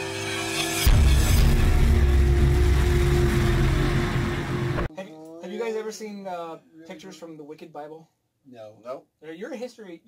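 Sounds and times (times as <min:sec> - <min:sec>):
sudden hit: 0:00.3 - 0:04.9
heavy low rumble with hum: 0:00.9 - 0:04.9.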